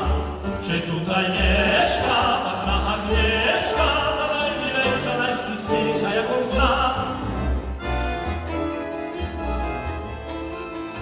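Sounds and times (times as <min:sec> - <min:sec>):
accordion and violin chords: 0:00.0 - 0:11.0
piano: 0:00.0 - 0:11.0
plucked double bass notes: 0:00.0 - 0:11.0.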